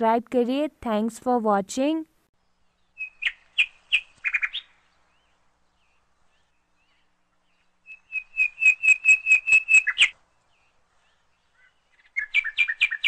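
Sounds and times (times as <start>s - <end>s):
bird chirping: 2.4s - 13.0s.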